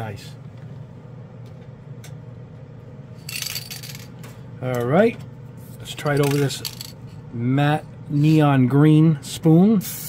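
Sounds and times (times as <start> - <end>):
exhaust fan humming: 0.0 - 10.0.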